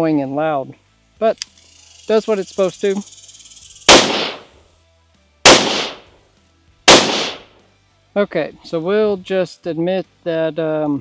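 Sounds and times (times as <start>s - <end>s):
sharp loud bangs: 3.9s - 4.5s, 5.5s - 6.1s, 6.9s - 7.5s.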